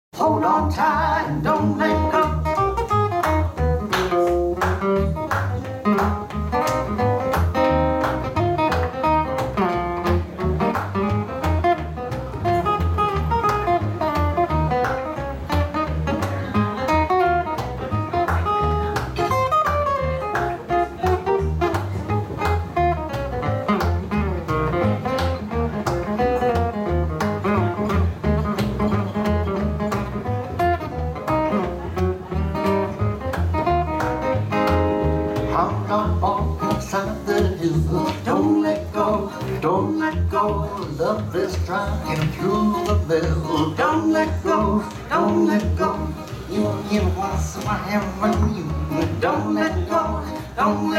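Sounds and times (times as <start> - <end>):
acoustic guitar: 0.2 - 50.9
upright double bass: 0.2 - 50.9.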